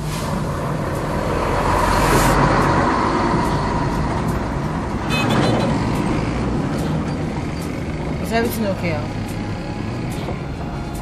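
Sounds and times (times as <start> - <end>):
motor traffic rumble: 0.0 - 11.0.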